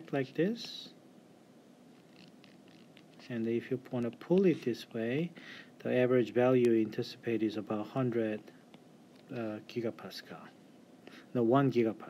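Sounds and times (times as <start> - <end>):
faint room hiss: 0.0 - 12.0
stylus strokes on tablet screen: 1.8 - 5.2.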